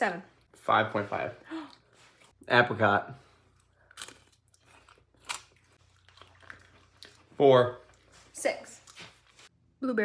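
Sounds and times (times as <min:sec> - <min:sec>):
crunchy fruit being chewed: 0:03.3 - 0:09.4.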